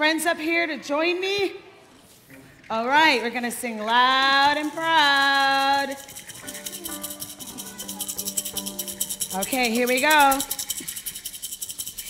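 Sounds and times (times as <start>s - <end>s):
hand rattle shaken fast: 3.7s - 12.0s.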